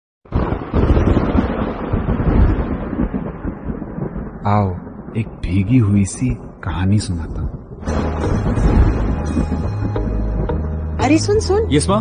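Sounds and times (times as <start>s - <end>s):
deep thunder rumbling: 0.3s - 12.0s.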